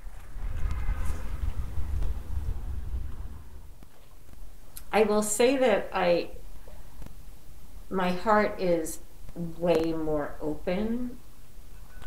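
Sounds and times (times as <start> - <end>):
low uneven rumble: 0.0 - 11.2.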